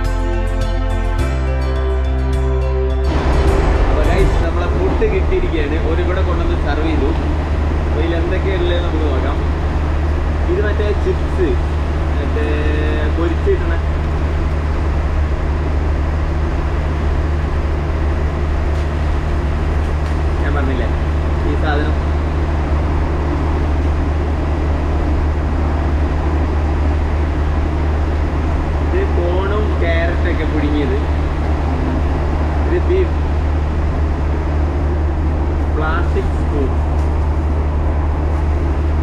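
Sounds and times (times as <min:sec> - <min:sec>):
low vehicle engine drone: 0:00.0 - 0:39.0.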